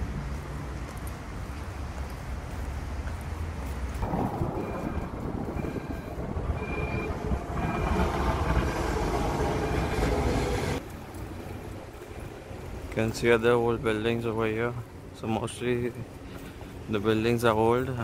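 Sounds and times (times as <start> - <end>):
tram rumbling over rails: 0.0 - 18.0.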